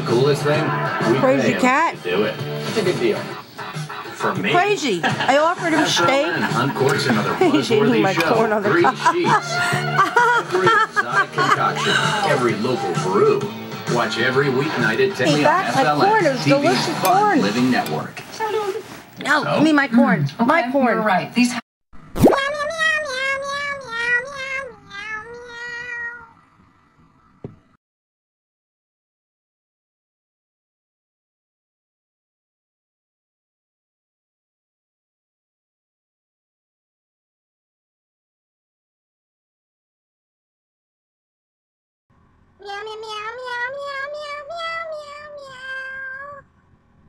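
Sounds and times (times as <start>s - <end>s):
cat meowing: 22.3s - 26.4s, 42.6s - 46.5s.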